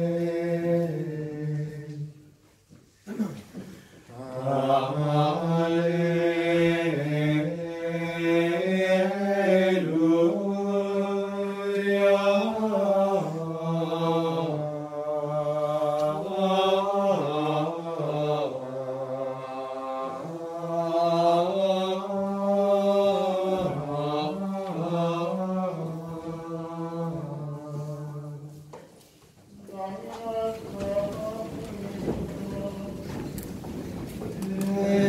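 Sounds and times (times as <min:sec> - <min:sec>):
men chanting in unison: 0:04.1 - 0:28.4.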